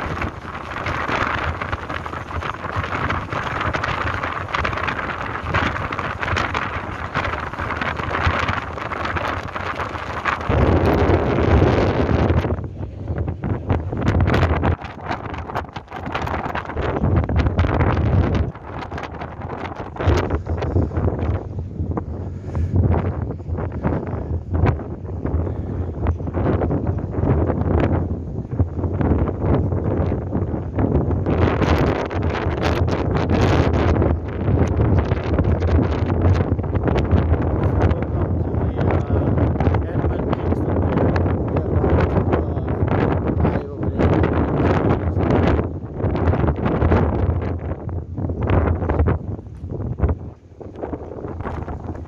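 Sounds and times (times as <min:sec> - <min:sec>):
low ship rumble: 0:00.0 - 0:52.0
wind buffeting microphone: 0:00.0 - 0:52.0.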